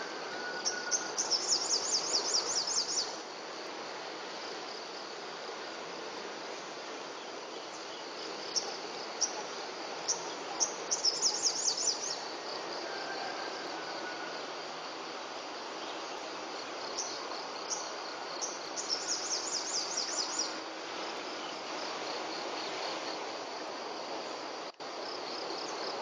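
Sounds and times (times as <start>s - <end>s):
insects humming: 0.0s - 26.0s.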